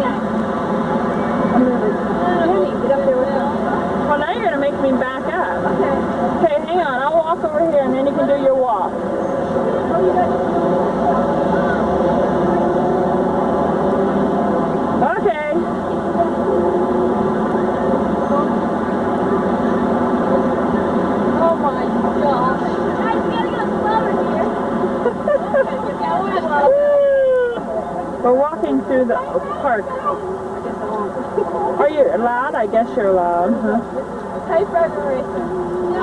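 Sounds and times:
louder voices: 0:00.0 - 0:36.0
steady drone: 0:00.0 - 0:36.0
young people chattering: 0:00.0 - 0:36.0.

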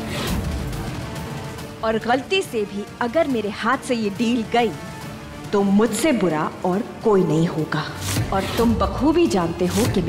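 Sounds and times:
dramatic music hit with low boom: 0:00.0 - 0:07.2
woman's voice: 0:01.8 - 0:04.8, 0:05.5 - 0:10.0.

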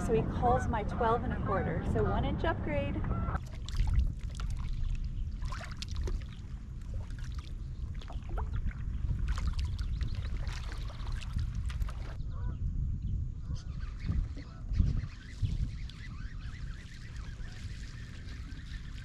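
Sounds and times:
steady low rumble: 0:00.0 - 0:19.0
water dripping and splashing: 0:03.4 - 0:12.2
birds calling: 0:13.4 - 0:19.0.

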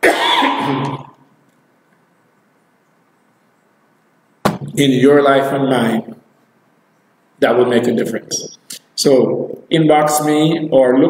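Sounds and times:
man coughing: 0:00.0 - 0:01.1.

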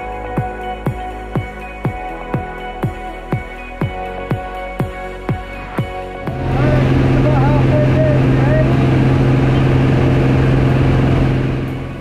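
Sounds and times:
music: 0:00.0 - 0:12.0
aircraft engine drone: 0:06.3 - 0:12.0
rushing air: 0:06.3 - 0:12.0.

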